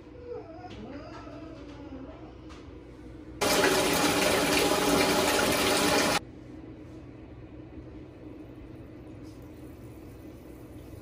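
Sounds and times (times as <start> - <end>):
water running from bathtub tap: 3.4 - 6.2.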